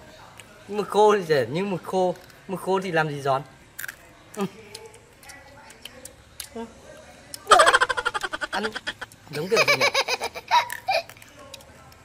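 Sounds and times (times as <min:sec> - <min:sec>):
boy giggling: 0:07.5 - 0:11.2.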